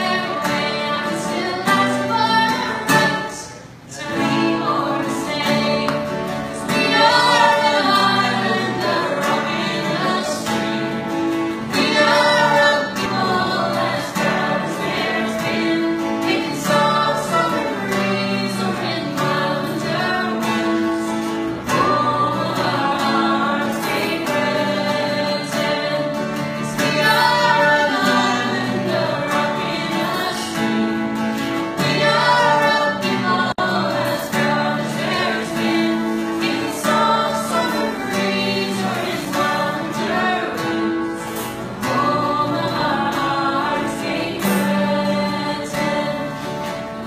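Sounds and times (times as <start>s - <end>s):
woman singing: 0.0s - 11.0s, 11.7s - 30.9s, 31.8s - 46.8s
strummed acoustic guitars: 0.0s - 47.0s.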